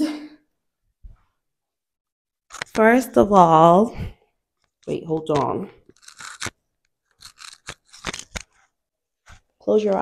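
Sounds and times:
rustling scrapes of a strap: 0:05.8 - 0:09.6.

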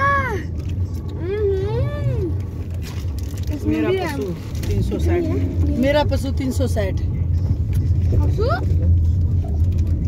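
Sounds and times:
child's drawn-out voice: 0:00.0 - 0:00.4
car running hum: 0:00.0 - 0:10.0.

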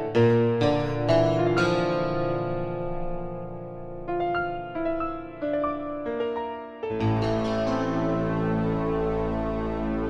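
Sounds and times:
piano notes and chords: 0:00.0 - 0:10.0.

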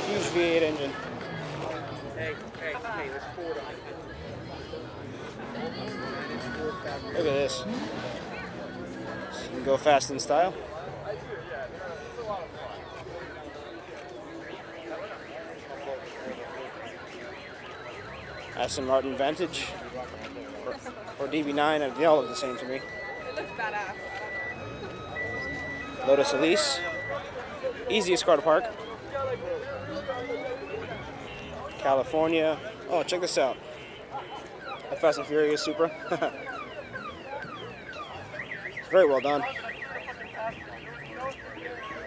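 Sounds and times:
electronic warbling siren: 0:21.4 - 0:32.4, 0:34.3 - 0:42.0
car alarm whistle-like sweeps: 0:21.9 - 0:27.4, 0:33.7 - 0:42.0.

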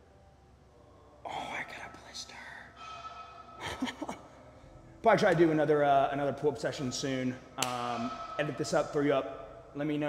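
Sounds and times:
person whispering: 0:01.2 - 0:04.1.

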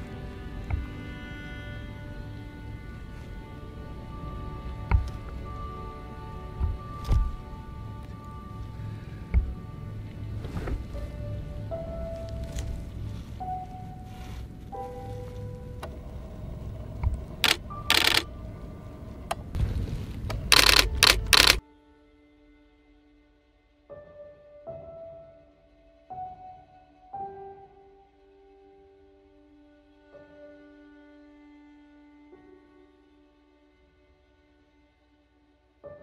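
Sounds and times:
slow background music: 0:00.0 - 0:36.0
low rumble: 0:02.3 - 0:21.4
camera shutter bursts: 0:17.4 - 0:18.2, 0:20.5 - 0:21.6.

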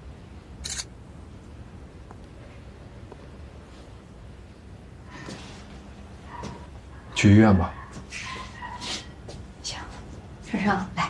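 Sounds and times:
low room hum: 0:00.0 - 0:11.0
camera shutter sound: 0:00.6 - 0:00.9.

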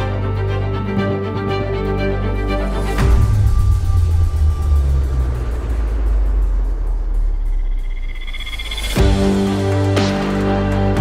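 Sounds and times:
high whine: 0:00.0 - 0:11.0
music: 0:00.0 - 0:11.0
deep rumbling boom: 0:02.6 - 0:09.4.

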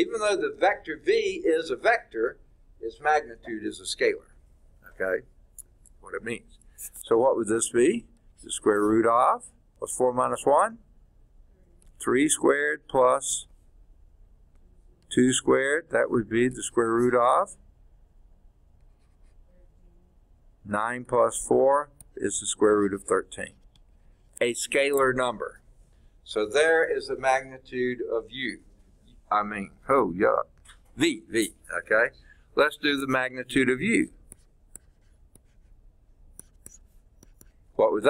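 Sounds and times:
stylus scratching on tablet screen: 0:16.6 - 0:17.5, 0:18.8 - 0:20.0, 0:32.8 - 0:38.0.

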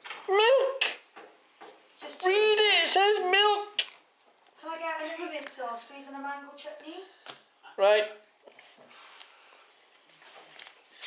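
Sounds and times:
man speaking: 0:02.2 - 0:03.8, 0:07.7 - 0:08.2
breathy noise near microphone: 0:04.5 - 0:07.8, 0:08.4 - 0:11.0.

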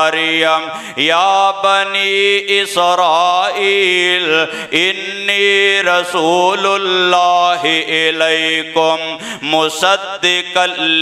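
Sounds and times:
man chanting melodic recitation: 0:00.0 - 0:11.0.

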